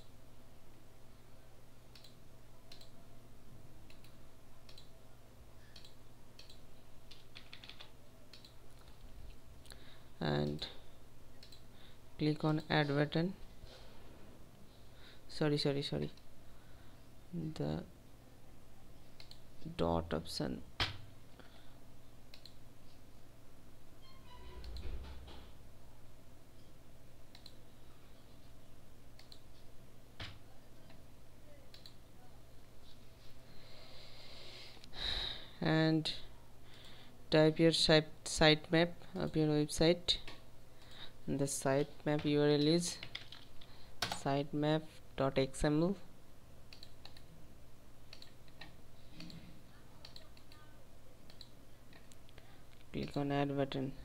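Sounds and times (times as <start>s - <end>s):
low steady hum: 0.0s - 54.0s
keyboard typing: 5.6s - 9.1s, 41.8s - 44.2s, 48.1s - 49.4s.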